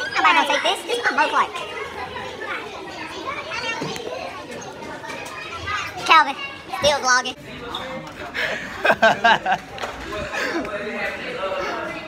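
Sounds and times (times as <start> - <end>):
chatter of students talking: 0.0 - 12.0.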